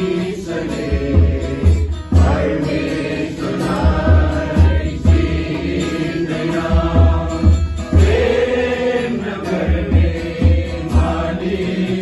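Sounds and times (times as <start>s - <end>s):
instrumental backing with pulsing beat: 0.0s - 12.0s
man singing chant-like: 0.0s - 12.0s.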